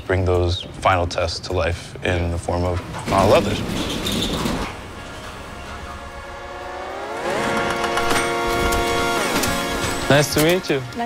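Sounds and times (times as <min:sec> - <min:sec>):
sustained tones gliding upward: 0:05.0 - 0:09.8.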